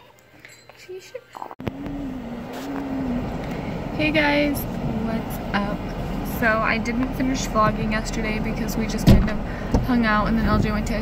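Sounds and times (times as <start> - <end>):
steady held tone: 1.6 - 9.5
car cabin engine and road noise: 1.6 - 11.0.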